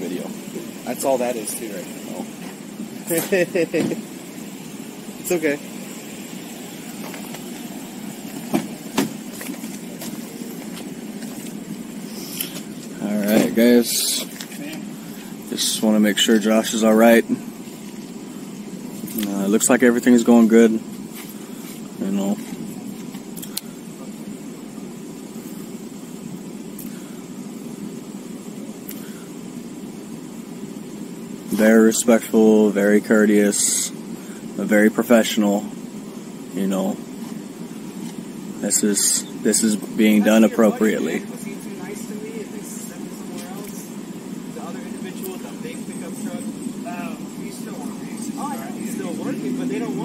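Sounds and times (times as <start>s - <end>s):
vehicle engine idling: 0.0s - 50.0s.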